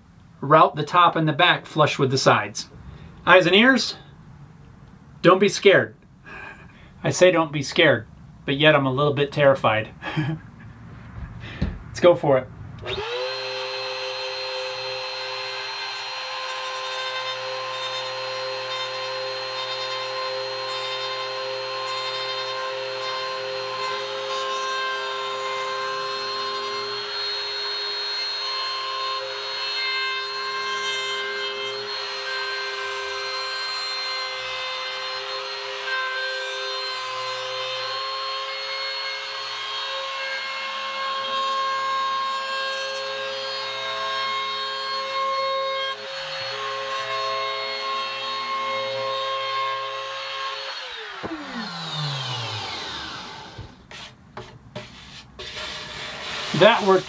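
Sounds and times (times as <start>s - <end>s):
router whining: 12.8s - 28.5s, 45.9s - 54.0s.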